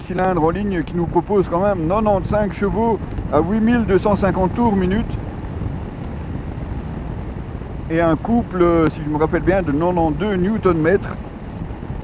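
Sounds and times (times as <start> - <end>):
motorcycle engine cruising: 0.0 - 12.0
wind and road noise: 0.0 - 12.0.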